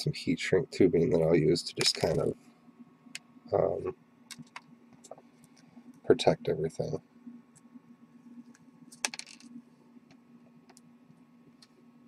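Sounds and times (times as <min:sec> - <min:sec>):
small hard objects clattering on wood: 0:09.0 - 0:09.5.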